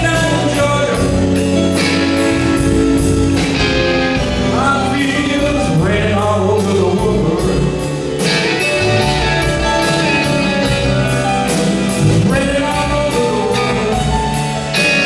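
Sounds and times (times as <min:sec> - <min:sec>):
band playing soul ballad: 0:00.0 - 0:15.0.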